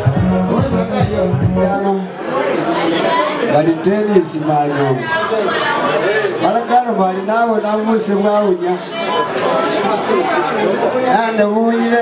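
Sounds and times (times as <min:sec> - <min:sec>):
voices talking over each other: 0:00.0 - 0:12.0.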